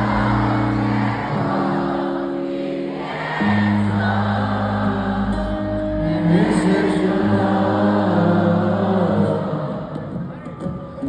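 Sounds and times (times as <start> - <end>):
live band playing in an arena: 0.0 - 11.0.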